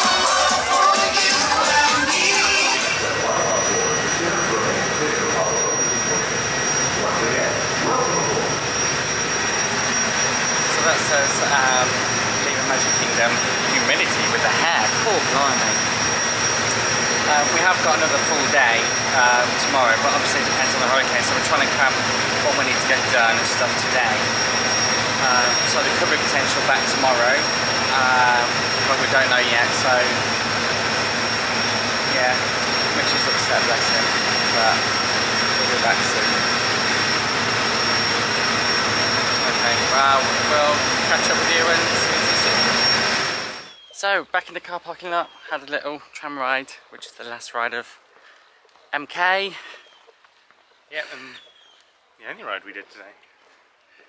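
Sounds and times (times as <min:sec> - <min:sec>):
parade music: 0:00.0 - 0:05.2
people talking: 0:00.0 - 0:08.7, 0:10.7 - 0:15.8, 0:16.6 - 0:24.4, 0:25.2 - 0:30.2, 0:32.1 - 0:36.5, 0:39.4 - 0:42.9, 0:44.0 - 0:48.0, 0:49.0 - 0:49.7, 0:50.9 - 0:51.4, 0:52.2 - 0:53.2
boat engine running: 0:00.0 - 0:43.7
high whine: 0:00.0 - 0:44.7.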